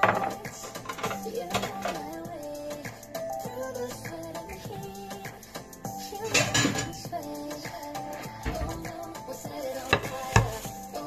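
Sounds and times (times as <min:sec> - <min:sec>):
kitchenware clacking on wood: 0:00.0 - 0:02.0, 0:06.3 - 0:07.0
background music: 0:00.0 - 0:11.0.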